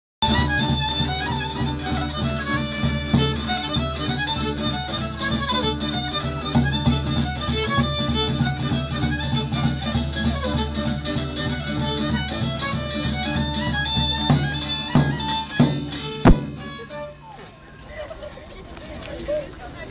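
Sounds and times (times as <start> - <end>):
fiddle playing dance tune: 0.2 - 17.8
rhythmic band accompaniment: 0.2 - 18.0.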